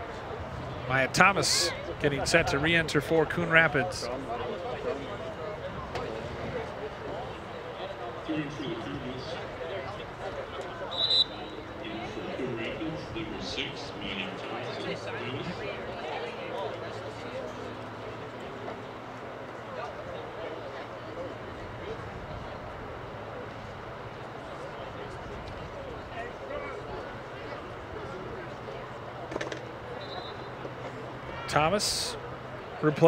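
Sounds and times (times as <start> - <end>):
faint scattered voices: 0.0 - 33.0.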